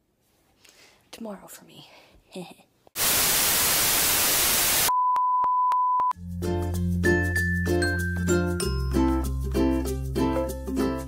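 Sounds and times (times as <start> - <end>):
television static hiss: 3.0 - 4.9
high beep tone: 4.8 - 6.2.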